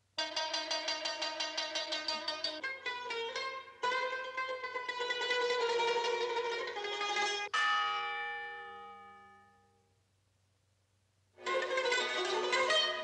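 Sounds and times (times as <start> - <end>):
plucked string music: 0.2 - 9.1, 11.4 - 13.0.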